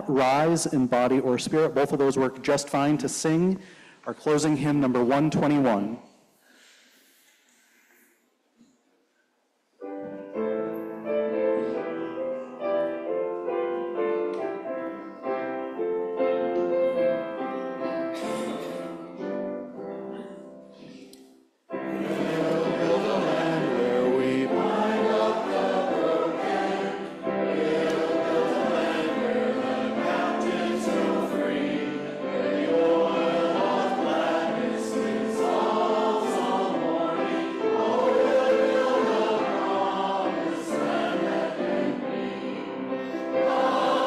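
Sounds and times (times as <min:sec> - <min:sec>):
congregation singing a hymn: 0:09.8 - 0:21.0, 0:21.7 - 0:44.0.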